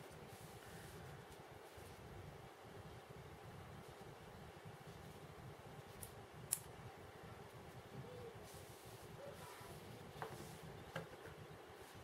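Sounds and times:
faint low background hum: 0.0s - 12.0s.

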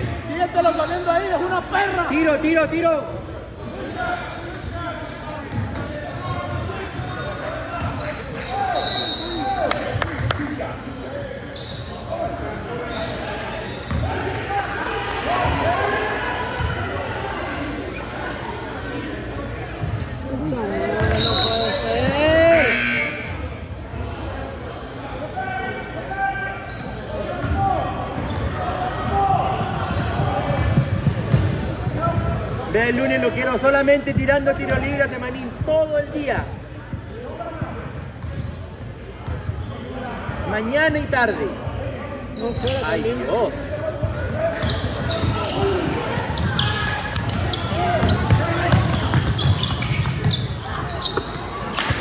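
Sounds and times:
players shouting and chattering: 0.0s - 52.0s.

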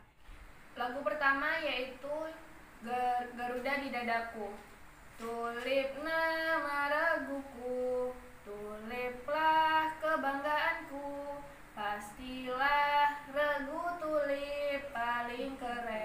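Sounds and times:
young woman singing unaccompanied: 0.7s - 16.0s.

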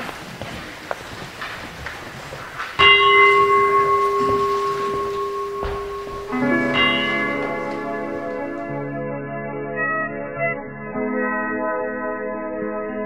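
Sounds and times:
bell struck with mallet ringing: 2.8s - 8.8s
music: 3.5s - 13.0s.

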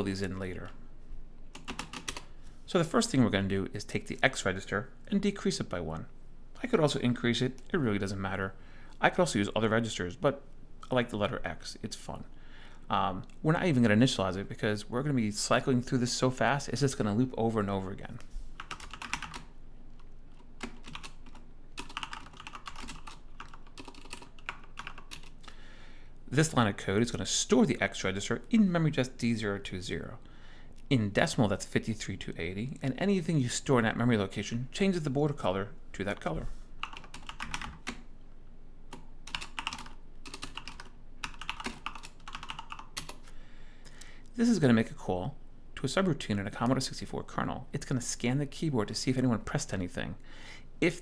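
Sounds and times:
computer keyboard typing: 1.5s - 2.3s, 18.6s - 19.5s, 20.4s - 25.4s, 36.8s - 38.0s, 38.9s - 43.2s.

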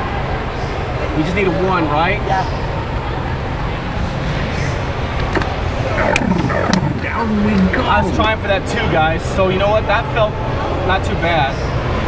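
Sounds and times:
crowd noise: 3.3s - 9.2s
game machines rumble and hiss: 5.2s - 9.1s.

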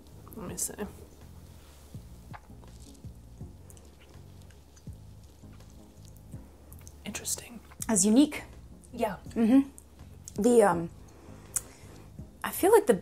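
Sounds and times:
low steady hum: 0.0s - 12.5s.

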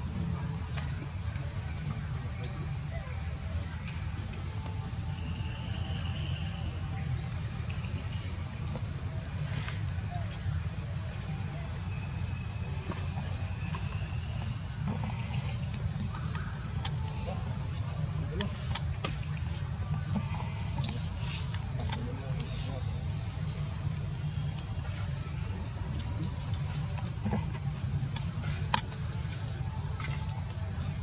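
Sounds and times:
forest insects droning: 0.0s - 31.0s.

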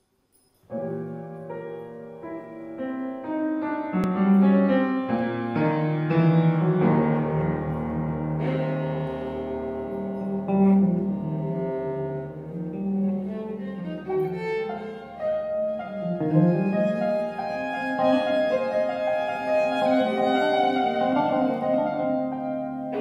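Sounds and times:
piano notes: 0.7s - 23.0s
bowed violas: 6.9s - 23.0s.

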